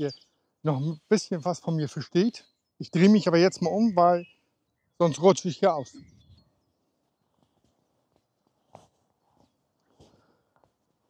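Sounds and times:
faint footsteps on grass: 0:07.3 - 0:11.0.

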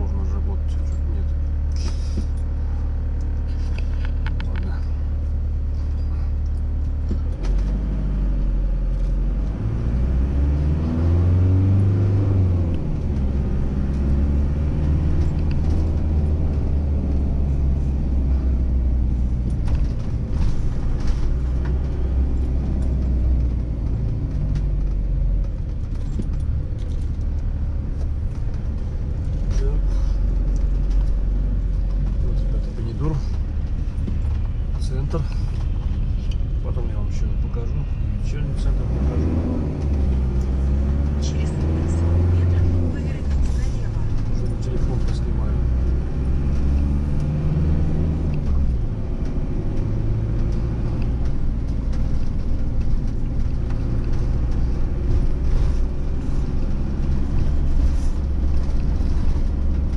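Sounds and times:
motorhome engine idling and pulling away: 0:00.0 - 0:59.9.

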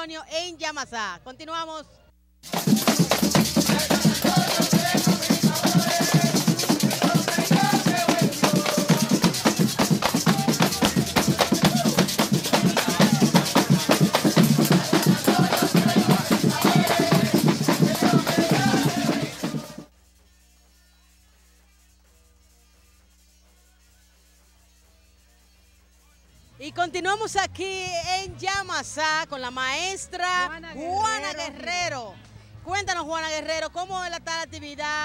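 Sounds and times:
hand drums played fast: 0:02.4 - 0:19.9
shaker: 0:02.4 - 0:28.2
group singing: 0:02.5 - 0:19.9.

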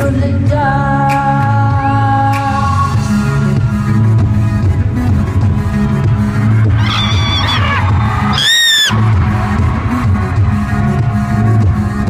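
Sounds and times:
live pop band music: 0:06.4 - 0:09.0
crowd member screaming: 0:06.8 - 0:09.0.

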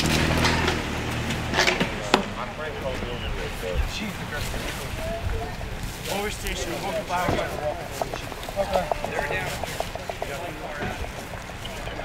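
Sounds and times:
faint background voices: 0:01.9 - 0:12.0
sharp knocks: 0:06.9 - 0:12.0.

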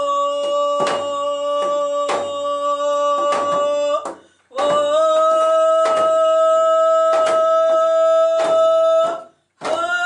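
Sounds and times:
person singing long high note: 0:00.0 - 0:10.0.

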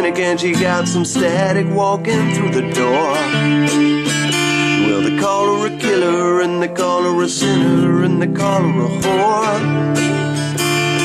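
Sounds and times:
acoustic guitar strumming chords: 0:00.0 - 0:11.0.

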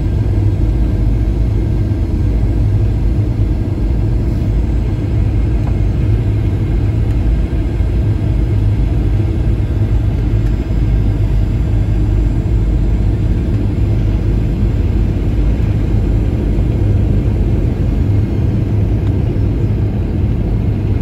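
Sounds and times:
jet engine cabin rumble: 0:00.0 - 0:21.0.

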